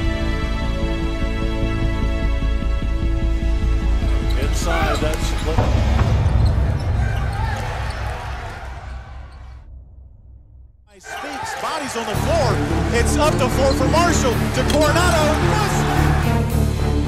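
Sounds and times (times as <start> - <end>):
arena crowd noise: 10.9 - 16.5.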